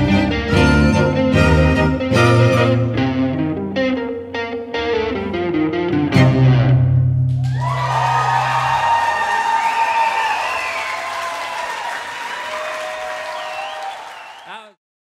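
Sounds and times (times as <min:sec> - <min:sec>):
electric guitar and strings chord: 0:00.0 - 0:07.3
audience applauding and cheering: 0:07.3 - 0:14.8.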